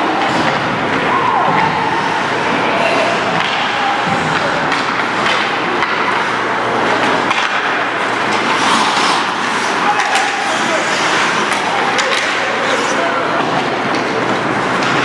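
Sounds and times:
indistinct shouting voices: 0:00.0 - 0:14.2
hockey sticks and puck clacking: 0:00.0 - 0:15.0
skate blades scraping ice: 0:06.1 - 0:15.0.

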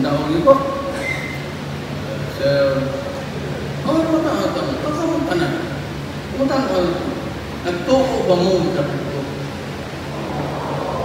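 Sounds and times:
faint background noise: 0:00.0 - 0:11.0
steady low hum: 0:00.0 - 0:11.0.

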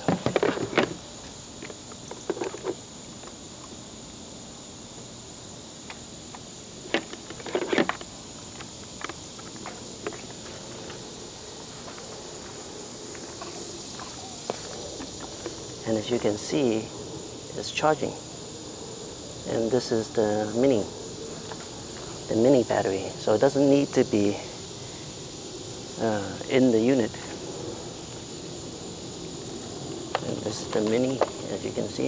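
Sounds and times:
insects chirring: 0:00.0 - 0:32.0.

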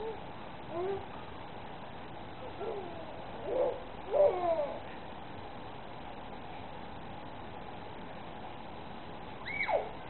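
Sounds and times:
baby cooing and babbling: 0:02.6 - 0:04.9.

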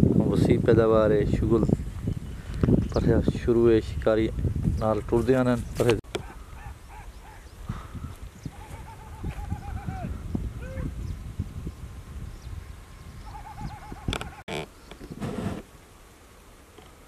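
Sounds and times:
wind rumble on microphone: 0:00.0 - 0:15.6
bird calling: 0:06.0 - 0:11.2, 0:12.4 - 0:15.2.

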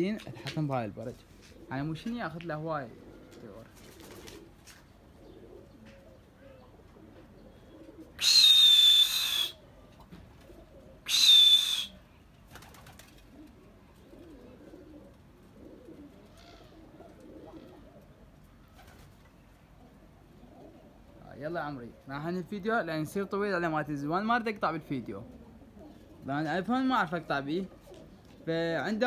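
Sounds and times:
pigeons cooing: 0:00.0 - 0:22.5, 0:24.9 - 0:29.0
hissing blasts with high whistle: 0:08.2 - 0:09.6, 0:11.1 - 0:12.0.

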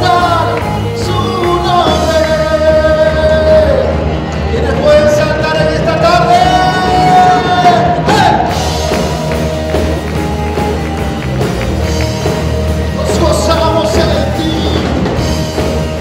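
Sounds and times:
live worship band playing: 0:00.0 - 0:16.0.

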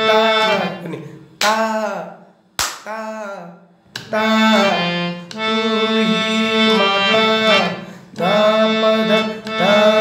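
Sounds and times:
man singing: 0:00.0 - 0:02.2, 0:02.8 - 0:10.0
hand clap: 0:02.6 - 0:02.9
harmonium note: 0:04.2 - 0:10.0.

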